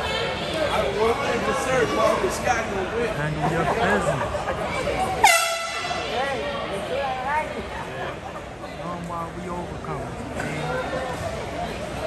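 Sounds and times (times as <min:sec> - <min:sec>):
background chatter: 0:00.0 - 0:12.0
air horn blast: 0:05.2 - 0:06.0.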